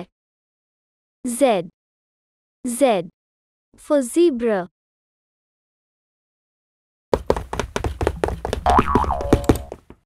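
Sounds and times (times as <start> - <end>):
fast cartoon knocks: 7.1 - 10.0
springy cartoon boing: 8.6 - 9.7.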